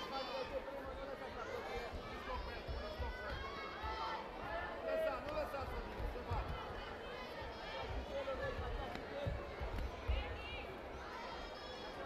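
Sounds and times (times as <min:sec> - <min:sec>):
indistinct voices in echoing hall: 0:00.0 - 0:12.0.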